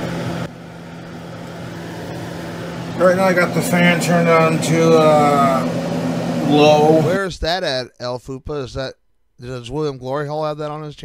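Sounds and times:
range hood fan humming: 0.0s - 7.3s.

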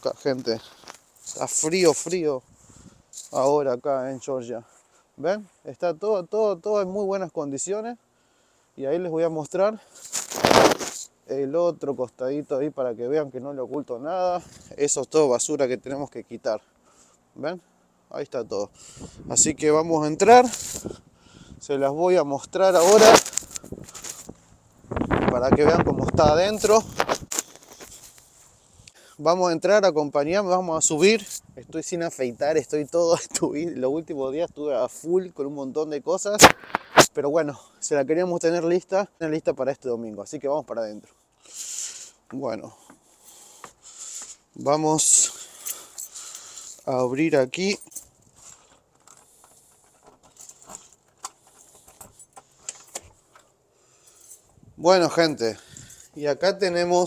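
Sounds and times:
person speaking: 0.0s - 2.5s, 3.2s - 8.0s, 17.4s - 21.0s, 21.6s - 24.2s, 25.2s - 27.1s, 46.8s - 48.0s, 54.8s - 57.0s
footsteps on dry grass and leaves: 0.0s - 3.7s, 9.9s - 11.1s, 22.6s - 25.5s, 26.2s - 28.8s
keys jangling on a ring: 45.4s - 46.9s, 47.8s - 53.0s.

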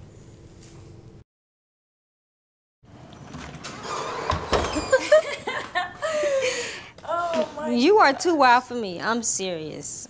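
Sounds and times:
woman laughing: 4.8s - 7.7s.

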